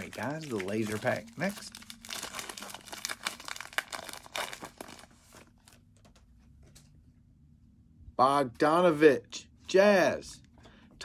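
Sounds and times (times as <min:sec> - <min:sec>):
foil wrapper crinkling and tearing: 0:00.0 - 0:05.9.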